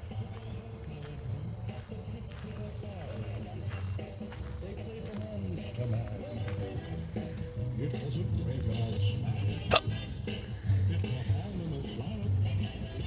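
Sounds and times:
faint music: 0.0s - 13.0s
indistinct voices: 0.0s - 13.0s.

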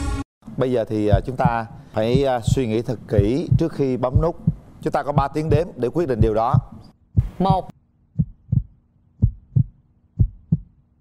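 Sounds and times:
heartbeat thumps: 1.0s - 10.8s.

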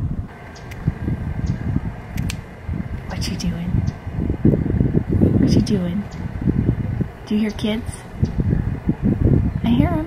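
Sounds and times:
faint steady whine: 0.0s - 10.0s
low uneven rumble: 0.0s - 10.0s.

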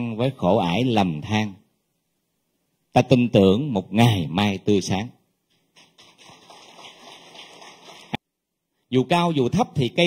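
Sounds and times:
audience applauding: 6.0s - 8.2s.

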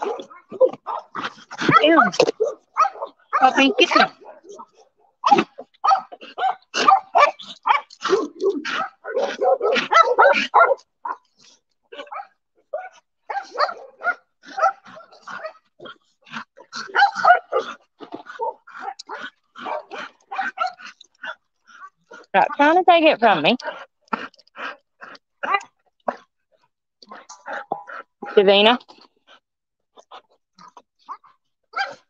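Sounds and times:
dogs barking: 0.0s - 11.3s, 11.9s - 15.7s, 16.4s - 22.8s, 31.1s - 32.0s.

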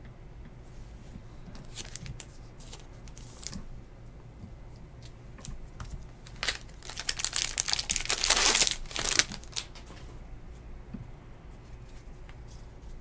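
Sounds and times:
foil wrapper crinkling and tearing: 1.6s - 3.6s, 6.2s - 9.8s.

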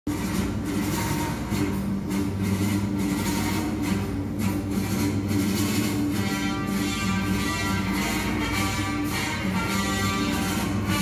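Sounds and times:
music with low droning notes: 0.1s - 11.0s.

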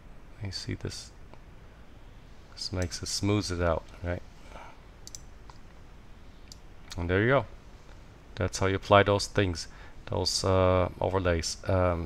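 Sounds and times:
computer mouse clicks: 5.0s - 5.8s.

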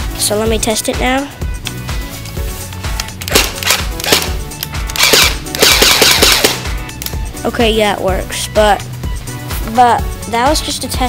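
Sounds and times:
electric airsoft gun firing: 3.3s - 6.7s.

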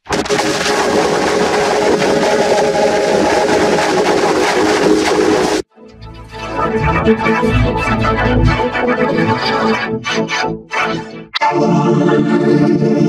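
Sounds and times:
harsh distorted noise: 0.0s - 5.7s.

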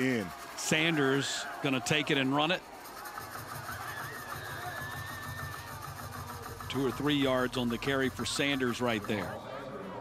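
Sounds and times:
low pulsing engine drone: 2.6s - 10.0s.

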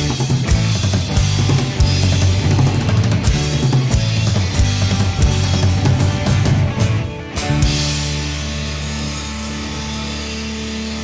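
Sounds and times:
rock band sustained chord: 0.0s - 11.0s.

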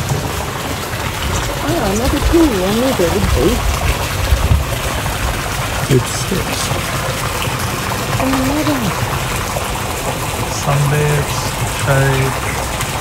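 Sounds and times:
water splashing into pool: 0.0s - 13.0s.

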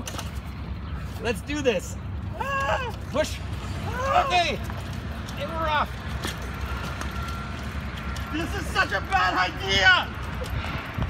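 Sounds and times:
bicycle rolling over paving stones: 3.5s - 10.6s.

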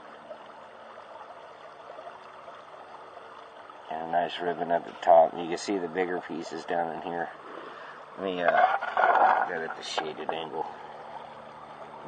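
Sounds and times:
creek water running: 0.0s - 12.0s.

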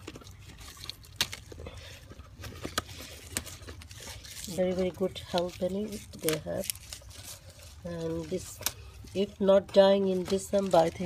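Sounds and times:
leaves rustling: 0.0s - 11.0s.

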